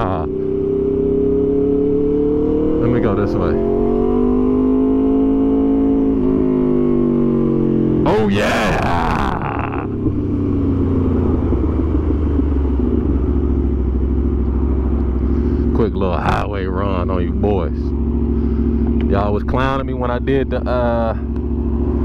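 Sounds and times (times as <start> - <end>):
motorcycle engine braking: 17.8 - 19.1.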